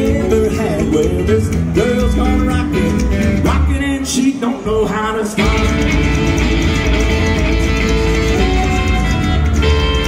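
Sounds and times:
acoustic rhythm guitar: 0:00.0 - 0:10.0
drums: 0:00.0 - 0:10.0
electric guitar: 0:00.0 - 0:10.0
upright bass: 0:00.0 - 0:10.0.

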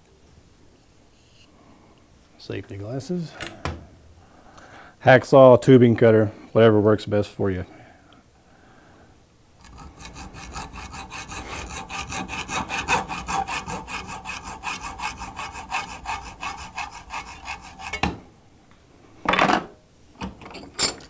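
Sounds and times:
hacksaw cutting metal tube: 0:09.6 - 0:18.2.

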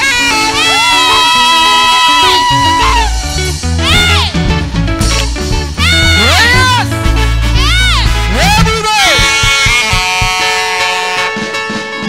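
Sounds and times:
drum strokes: 0:03.4 - 0:11.9.

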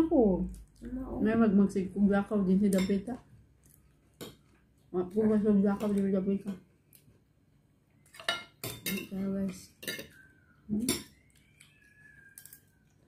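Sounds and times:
plate and cutlery clinking: 0:09.8 - 0:10.2.

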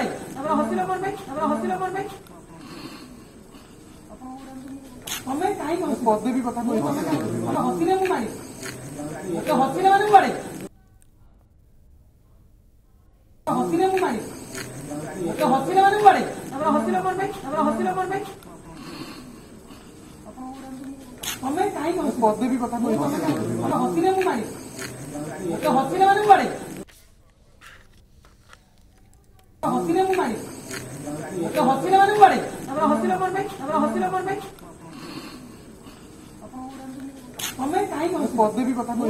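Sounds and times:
person talking: 0:04.0 - 0:10.7, 0:13.5 - 0:19.4, 0:20.0 - 0:26.8, 0:29.6 - 0:39.0.

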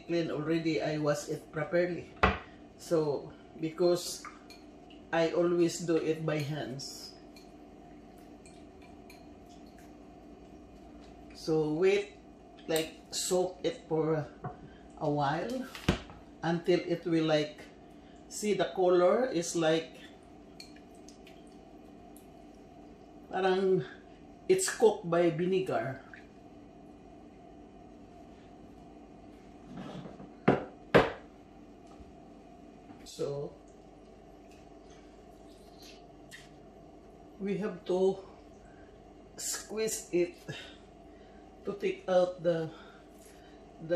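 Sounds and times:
low steady hum: 0:00.0 - 0:43.9
items knocking on counter: 0:02.2 - 0:02.5, 0:30.1 - 0:31.2.

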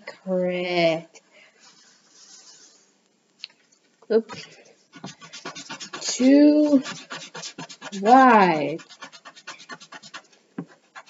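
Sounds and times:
pencil sketching on paper: 0:04.9 - 0:11.0.

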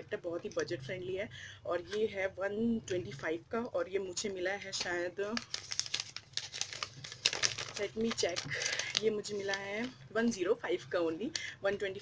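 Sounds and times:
wrapping crinkling: 0:04.8 - 0:10.0.

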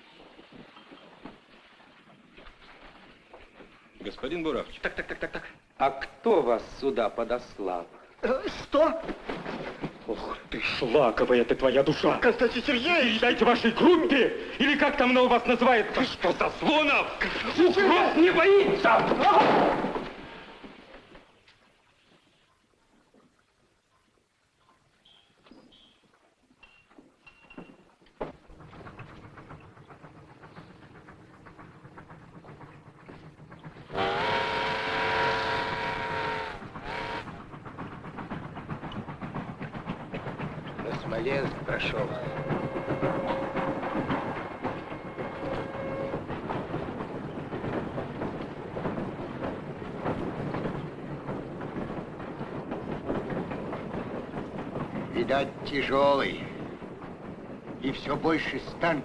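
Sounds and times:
train rumbling past: 0:00.0 - 0:21.9, 0:27.4 - 0:59.0
wheels clattering on rail joints: 0:00.0 - 0:23.1, 0:23.7 - 0:59.0
steam locomotive whistle: 0:33.9 - 0:37.4, 0:42.1 - 0:46.3.

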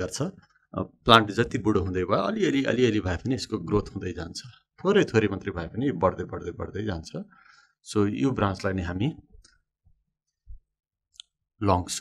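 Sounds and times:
man speaking: 0:00.0 - 0:07.3, 0:07.9 - 0:09.3, 0:11.6 - 0:12.0.

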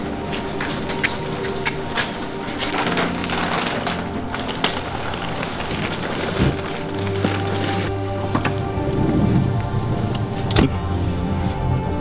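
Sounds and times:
clicks and crunches: 0:00.0 - 0:09.1
suitcase wheels rolling: 0:00.0 - 0:10.7
footsteps: 0:00.0 - 0:10.8
background music with held notes: 0:00.0 - 0:12.0.

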